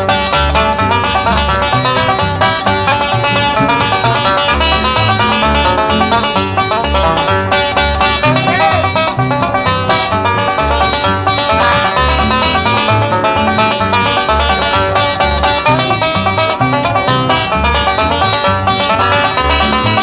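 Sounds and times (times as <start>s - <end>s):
acoustic guitar: 0.0s - 20.0s
banjo picked fast: 0.0s - 20.0s
string bass: 0.0s - 20.0s.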